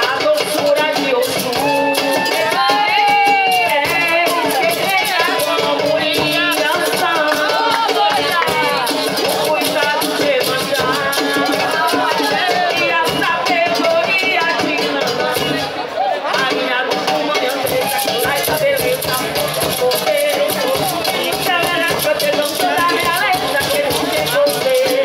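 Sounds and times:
shaker rhythm: 0:00.0 - 0:25.0
woman singing: 0:00.0 - 0:25.0.

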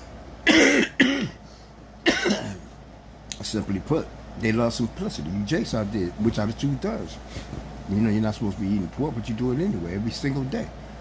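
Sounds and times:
man coughing: 0:00.4 - 0:02.8.

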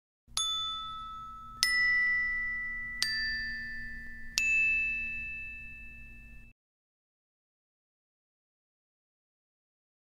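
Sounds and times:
bell-like chime notes: 0:00.4 - 0:06.6.

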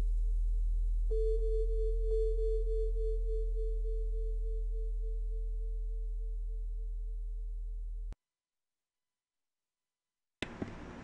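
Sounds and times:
steady low hum: 0:00.0 - 0:08.2
wavering held bowl tone: 0:01.1 - 0:07.5.

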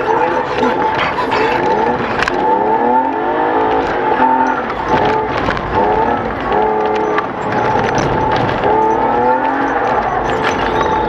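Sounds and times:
race car engine revving: 0:00.0 - 0:11.0.

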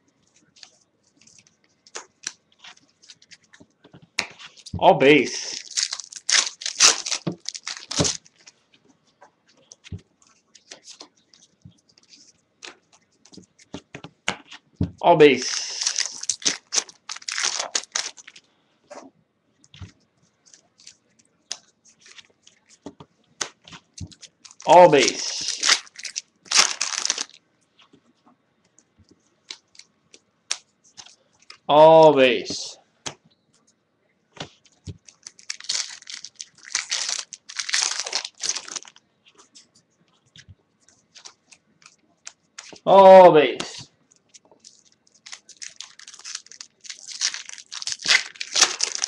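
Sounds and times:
foil wrapper tearing and crinkling: 0:05.3 - 0:08.5, 0:15.4 - 0:18.4, 0:23.4 - 0:27.4, 0:35.0 - 0:39.0, 0:44.3 - 0:49.0.

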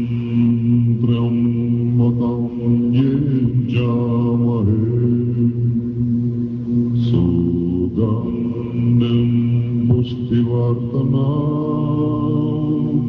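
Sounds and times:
men chanting on one deep pitch: 0:00.0 - 0:05.8, 0:06.8 - 0:13.0.

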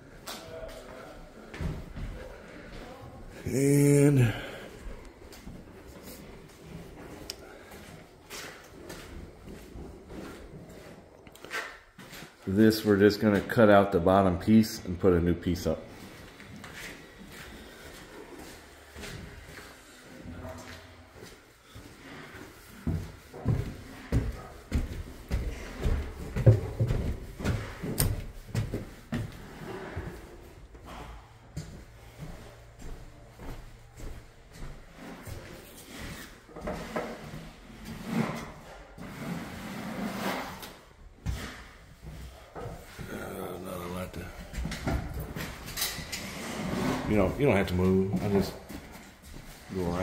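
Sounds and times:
footsteps in a house: 0:00.0 - 0:14.2, 0:15.4 - 0:50.0.

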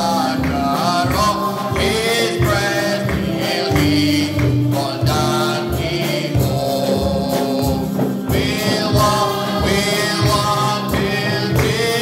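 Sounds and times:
accompaniment with steady beat: 0:00.0 - 0:12.0
man singing hymn into microphone: 0:00.0 - 0:12.0
voices singing along: 0:00.0 - 0:12.0.

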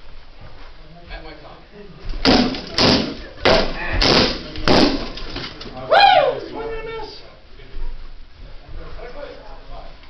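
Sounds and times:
rattan weapons striking: 0:02.2 - 0:05.6.

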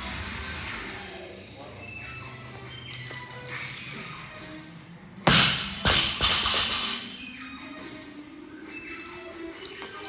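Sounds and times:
background music: 0:00.0 - 0:10.0
barbell dropped on gym floor: 0:05.3 - 0:07.0.

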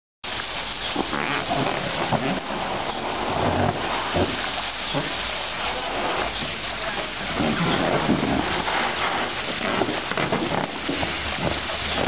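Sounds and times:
elephants splashing water: 0:00.3 - 0:12.0.

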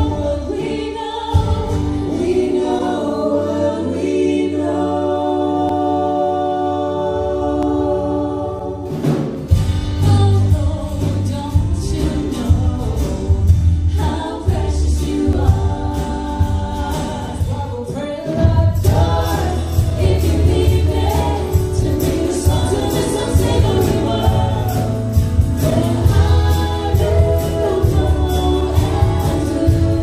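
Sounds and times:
live pop band with vocals: 0:00.0 - 0:30.0.

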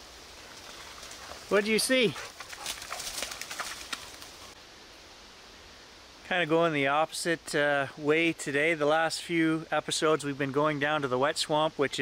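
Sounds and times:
rustling in undergrowth: 0:00.0 - 0:06.2
faint steady hiss: 0:00.0 - 0:12.0.

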